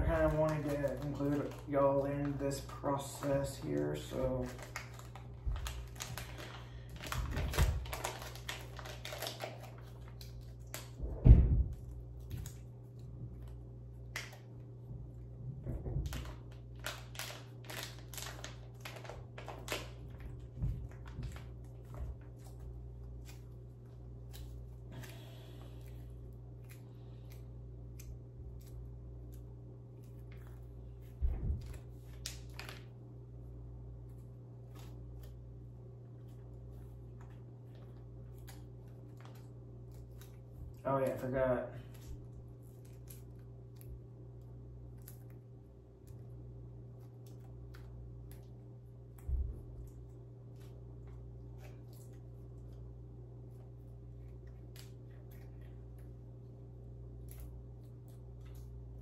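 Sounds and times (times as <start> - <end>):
packet crinkling in hands: 0.0 - 11.0, 16.0 - 33.1, 34.0 - 49.2
steady low hum: 0.0 - 59.0
dull thump: 11.0 - 11.8.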